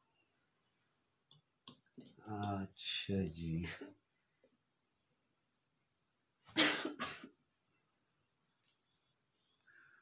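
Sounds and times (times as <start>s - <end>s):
man coughing: 6.5s - 7.3s.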